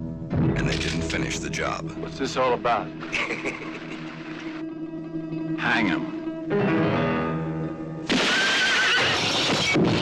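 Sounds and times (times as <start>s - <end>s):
burst of noise: 8.1s - 10.0s
horse whinny: 8.3s - 9.5s.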